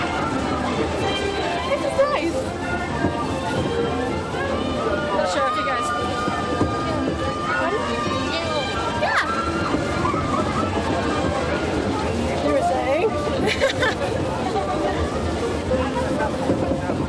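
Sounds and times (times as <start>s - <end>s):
babble of voices: 0.0s - 17.0s
music playing: 0.0s - 17.0s.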